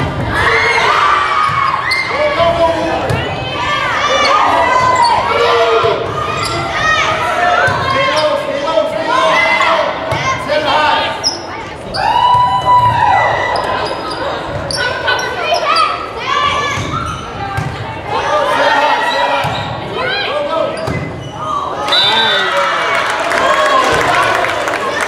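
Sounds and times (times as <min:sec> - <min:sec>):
players calling: 0:00.3 - 0:25.0
spectators shouting: 0:21.5 - 0:25.0
cheering and clapping: 0:21.8 - 0:25.0.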